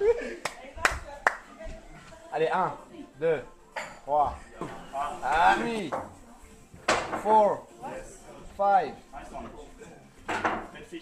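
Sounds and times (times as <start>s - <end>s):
sharp hand claps: 0.4s - 1.5s.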